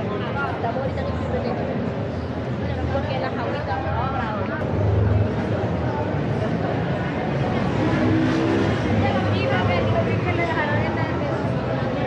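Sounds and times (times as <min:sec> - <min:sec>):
people talking: 0:00.0 - 0:12.0
passing traffic rumble: 0:01.9 - 0:12.0.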